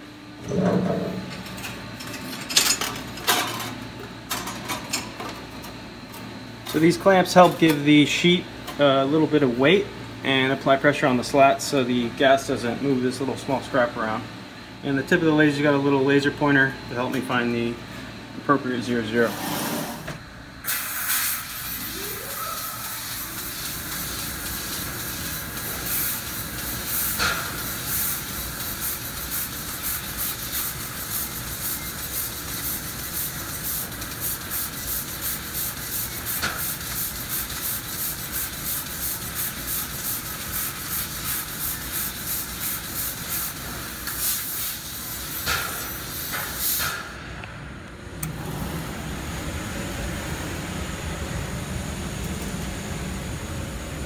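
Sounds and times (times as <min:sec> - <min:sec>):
laser cutter gas hissing: 0:20.6 - 0:47.1.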